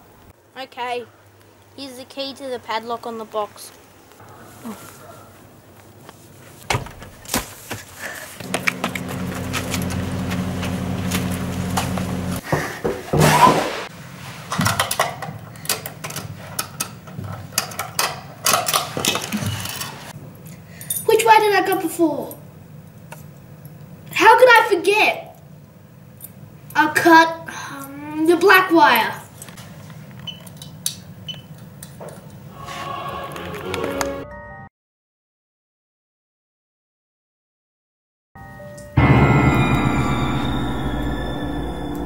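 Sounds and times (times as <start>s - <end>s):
steady low hum: 8.4s - 12.4s
loud scraping rush: 32.5s - 33.6s, 39.0s - 42.0s.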